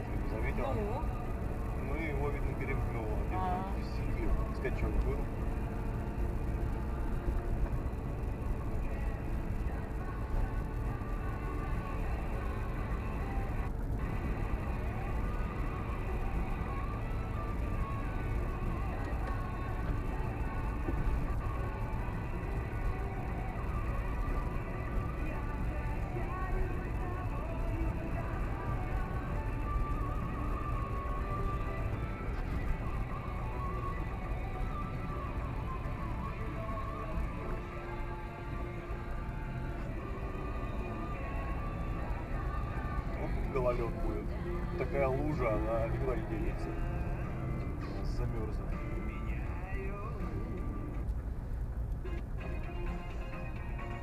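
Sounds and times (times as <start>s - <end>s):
engine and tyre rumble: 0.0s - 54.0s
music with singing on car radio: 0.0s - 54.0s.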